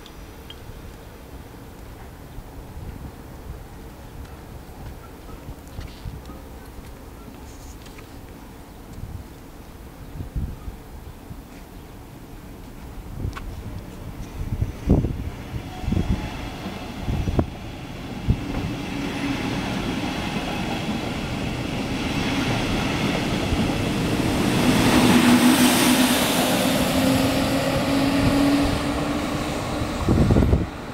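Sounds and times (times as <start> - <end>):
electric train passing: 12.0 - 30.9
wind thumps on microphone: 13.1 - 18.8, 29.7 - 30.9.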